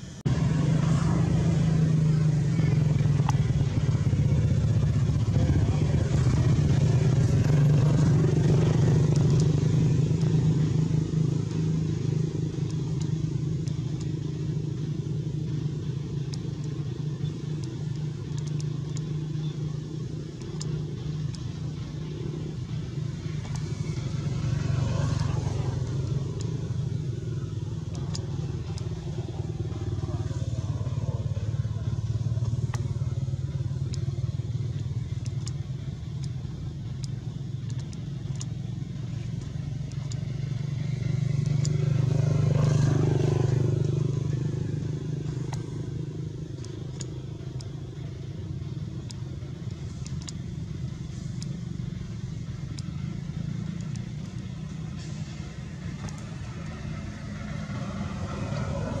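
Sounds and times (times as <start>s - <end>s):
motor droning: 0.0s - 59.0s
faint ticks: 6.4s - 59.0s.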